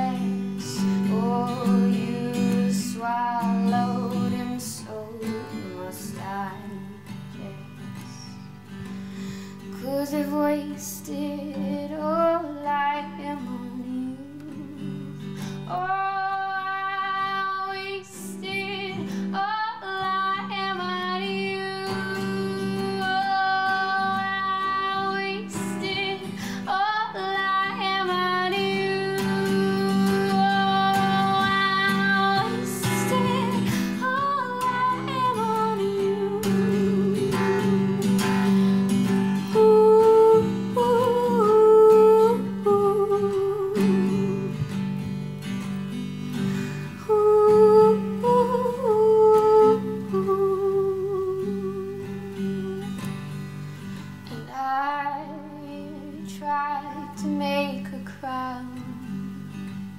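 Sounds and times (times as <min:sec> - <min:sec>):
woman singing: 0:00.0 - 0:08.6, 0:09.2 - 0:45.2, 0:46.4 - 0:53.4, 0:54.2 - 0:59.6
strummed classical guitar: 0:00.0 - 0:59.9.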